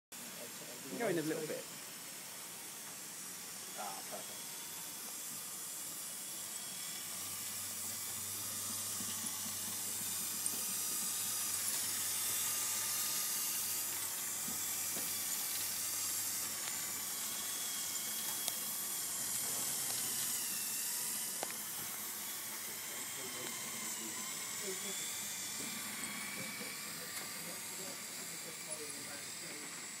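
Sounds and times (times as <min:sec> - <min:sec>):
electric motor whirring: 0:00.2 - 0:30.0.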